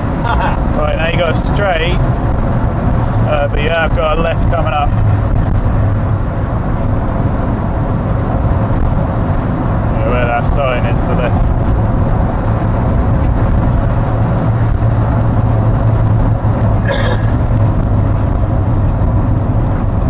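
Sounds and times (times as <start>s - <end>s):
car engine and road noise: 0.0s - 20.0s.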